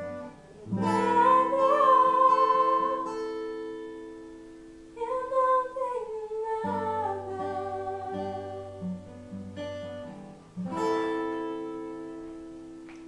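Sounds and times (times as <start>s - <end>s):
acoustic guitar picked and strummed: 0.0s - 13.0s.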